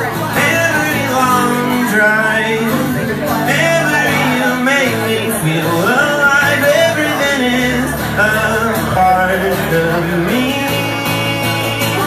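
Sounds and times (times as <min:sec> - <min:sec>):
acoustic guitar: 0:00.0 - 0:12.0
man singing: 0:00.0 - 0:12.0.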